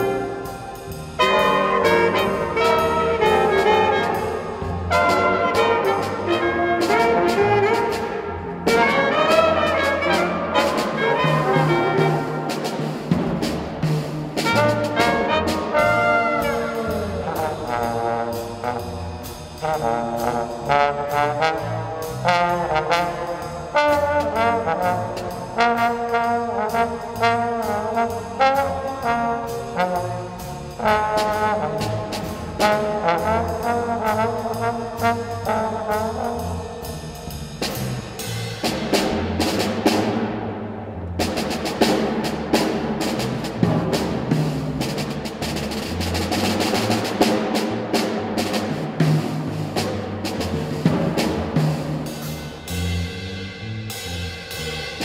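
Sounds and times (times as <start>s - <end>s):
jazz band playing: 0.0s - 55.0s.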